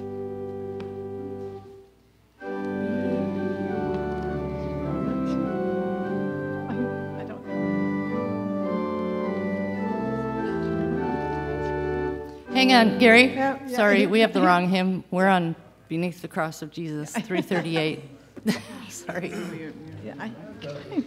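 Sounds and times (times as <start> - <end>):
church organ hymn chords: 0.0 - 15.4.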